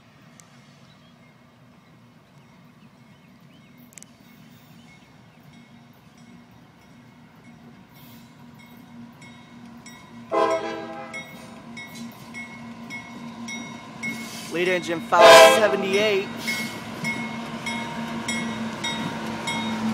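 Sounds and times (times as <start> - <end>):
diesel locomotive engine rumble: 0.0 - 19.9
locomotive air horn: 10.3 - 11.4, 15.1 - 15.9.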